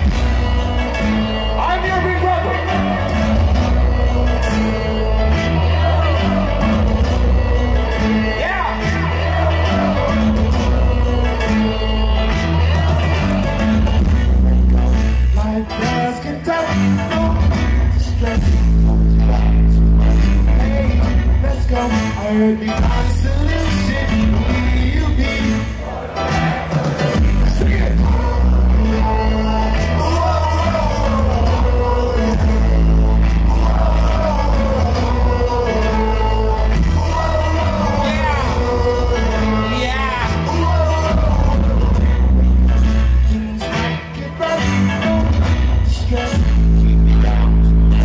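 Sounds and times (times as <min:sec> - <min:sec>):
deep bass line: 0:00.0 - 0:25.8, 0:27.1 - 0:48.0
hip-hop concert music: 0:00.0 - 0:48.0
sung vocal melody: 0:00.0 - 0:48.0.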